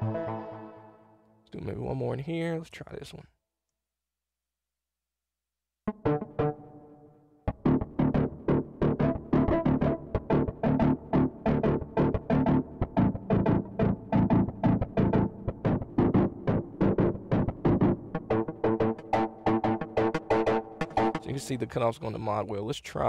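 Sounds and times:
synth and guitar chord stabs: 0:00.0 - 0:01.2, 0:05.9 - 0:21.3.

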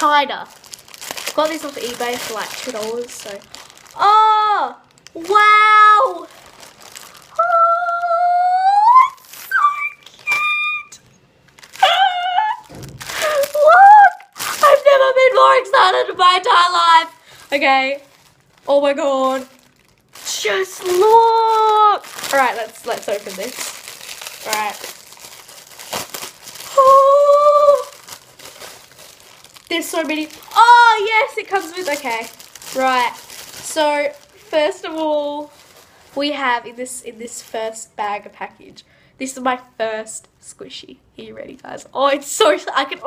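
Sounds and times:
plastic packaging crinkling: 0:00.0 - 0:38.5
girl squealing: 0:07.3 - 0:11.0, 0:11.8 - 0:16.2, 0:26.6 - 0:28.0
girl vocalizing ooh: 0:07.3 - 0:11.0, 0:11.8 - 0:14.4, 0:26.6 - 0:28.0.

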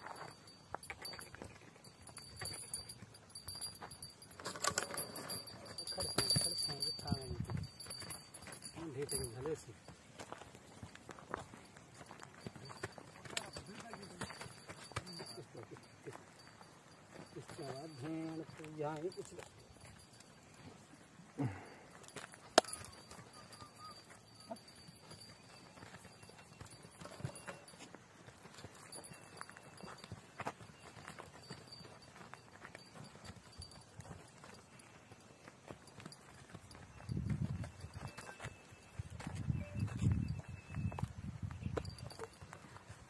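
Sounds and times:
hooves on stony ground: 0:00.0 - 0:43.0.

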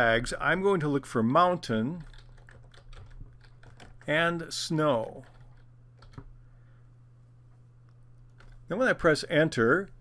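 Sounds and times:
typing on computer keyboard: 0:02.0 - 0:04.1, 0:05.2 - 0:06.3, 0:08.3 - 0:08.6.

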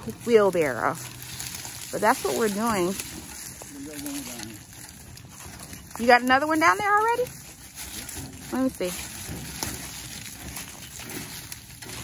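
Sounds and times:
footsteps on dry leaves: 0:00.0 - 0:12.0
wheelbarrow wheel rolling over leaves: 0:00.0 - 0:12.0.

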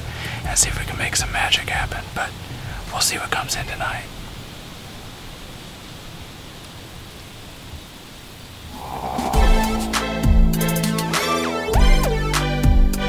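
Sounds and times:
strong wind through trees: 0:00.6 - 0:11.1.

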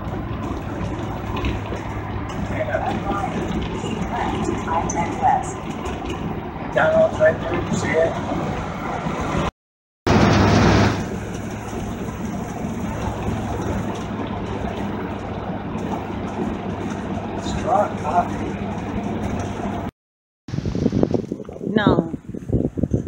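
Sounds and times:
low hum: 0:00.0 - 0:09.5, 0:10.1 - 0:19.9
road and engine drone: 0:00.0 - 0:23.0.

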